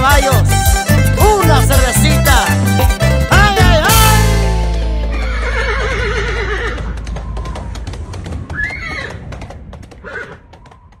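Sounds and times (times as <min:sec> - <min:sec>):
hooves clip-clopping: 0:05.1 - 0:11.0
horse whinnying: 0:05.2 - 0:07.0, 0:10.0 - 0:10.4.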